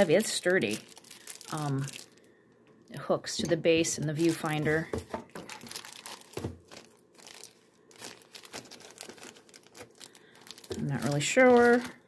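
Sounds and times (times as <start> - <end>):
plastic packaging crinkling: 0.0 - 2.4, 4.0 - 12.0.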